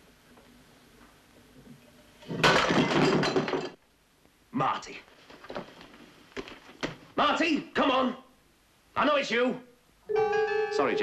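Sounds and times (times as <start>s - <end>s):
vase smashing: 2.3s - 3.8s.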